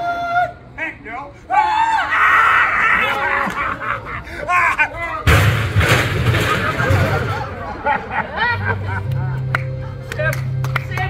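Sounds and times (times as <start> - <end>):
crash into barrels and trash can: 5.2 - 7.6
loud bang: 5.2 - 7.7.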